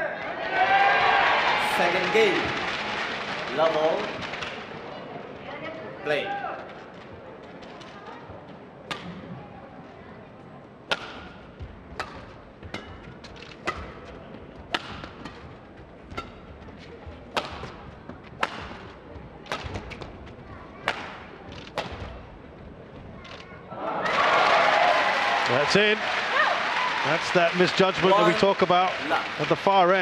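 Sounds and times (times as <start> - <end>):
crowd cheering and applause: 0.2 - 4.6, 23.7 - 30.0
rackets striking shuttlecock: 10.9 - 15.5, 16.1 - 16.5, 17.3 - 20.1, 20.8 - 22.2.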